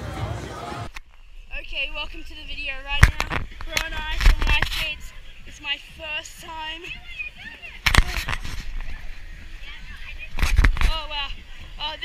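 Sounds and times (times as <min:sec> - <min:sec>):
skaters chattering: 0:00.0 - 0:12.0.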